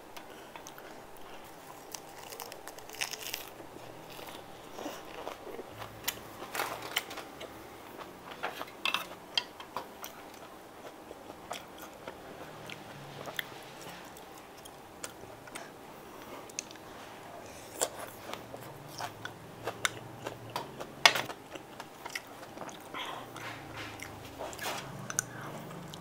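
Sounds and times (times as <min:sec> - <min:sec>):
person chewing and biting food: 0:00.5 - 0:09.3.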